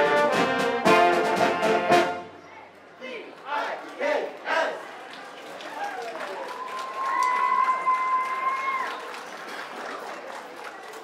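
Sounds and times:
brass band note: 0.0s - 2.4s
crowd noise: 0.0s - 11.0s
light applause: 3.3s - 11.0s.

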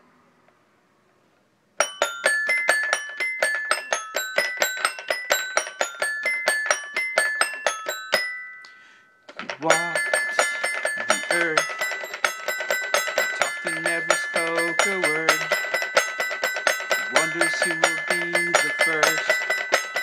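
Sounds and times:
toy xylophone notes: 1.8s - 20.0s.

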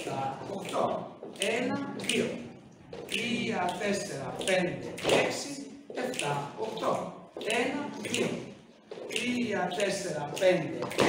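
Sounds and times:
man counting aloud: 0.0s - 2.5s, 3.1s - 11.0s.

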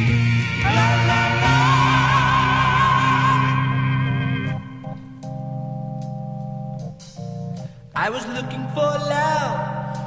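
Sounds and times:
bass line: 0.0s - 10.0s
held organ chords: 0.0s - 10.0s.

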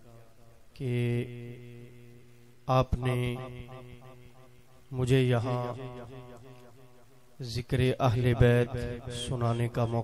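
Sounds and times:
long echo of voice: 0.0s - 10.0s
man speaking into a microphone: 2.6s - 4.2s, 4.9s - 6.4s, 7.4s - 10.0s.

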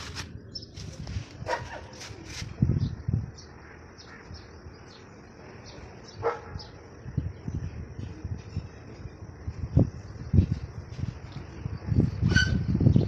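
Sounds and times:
dog barking: 1.4s - 2.0s, 6.2s - 6.7s.

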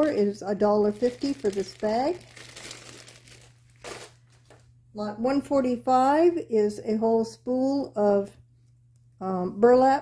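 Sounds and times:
plastic bag of tiles crinkling: 0.0s - 4.7s.

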